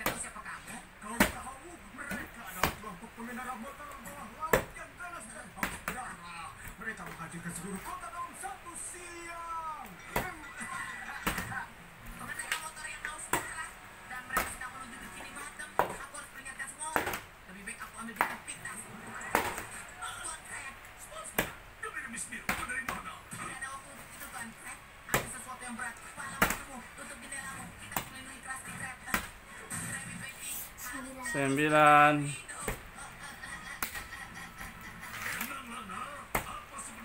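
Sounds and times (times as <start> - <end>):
faint music: 0.0 - 37.0.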